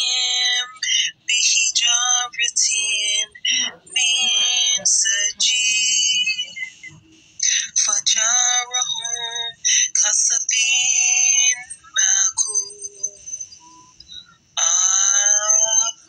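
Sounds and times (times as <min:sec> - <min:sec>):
processed high-pitched chanting voice: 0:00.0 - 0:16.0.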